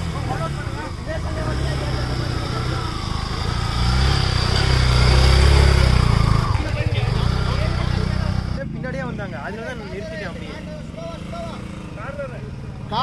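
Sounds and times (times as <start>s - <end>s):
motorcycle engine running hard: 0.0s - 13.0s.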